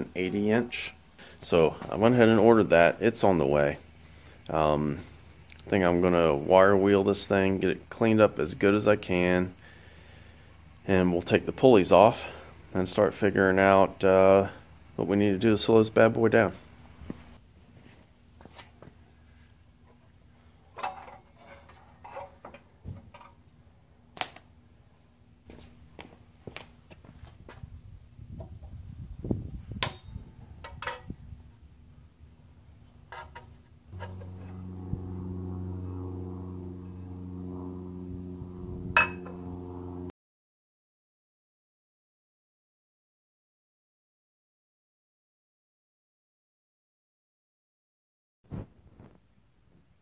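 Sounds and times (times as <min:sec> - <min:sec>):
electric motor humming: 0:33.9 - 0:40.1.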